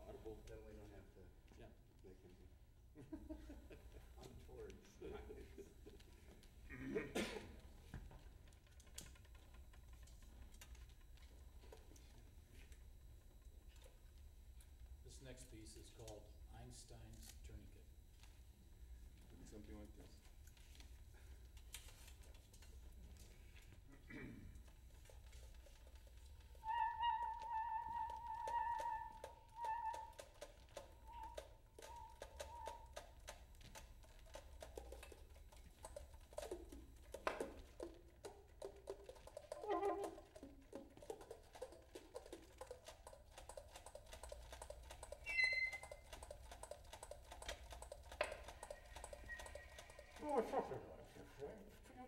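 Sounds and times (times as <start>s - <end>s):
saxophone quartet improvising: 26.6s - 33.0s, 39.5s - 40.7s.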